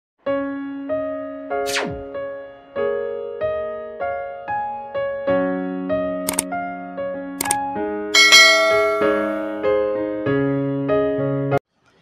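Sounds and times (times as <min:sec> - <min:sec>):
gentle piano music: 0:00.2 - 0:11.6
mouse click sound effects: 0:06.3 - 0:06.5
bright bell-like chime: 0:08.2 - 0:09.6.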